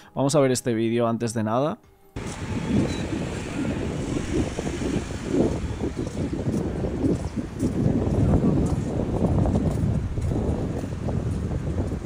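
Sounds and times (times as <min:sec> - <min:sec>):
distant traffic: 0:02.2 - 0:09.5
wind on microphone: 0:02.2 - 0:12.0.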